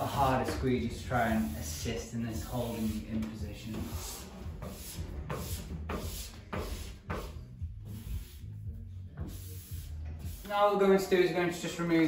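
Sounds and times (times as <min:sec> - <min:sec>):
squeegee rubbing on wet glass: 0:00.0 - 0:10.7
low background music: 0:00.0 - 0:12.0.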